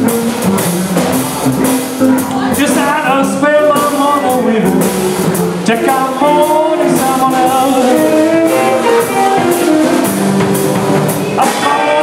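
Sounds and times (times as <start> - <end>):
drum kit with cymbals and snare: 0.0 - 12.0
electric bass: 0.0 - 12.0
electric guitar: 0.0 - 12.0
person singing: 2.0 - 12.0.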